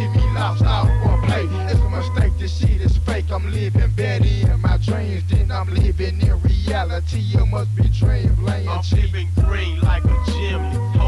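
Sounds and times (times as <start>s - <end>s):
rap song with bass and drums: 0.0s - 11.0s.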